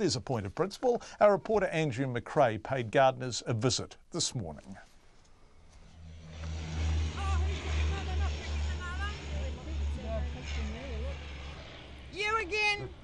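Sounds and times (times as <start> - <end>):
low pulsing engine rumble: 5.6 - 13.0.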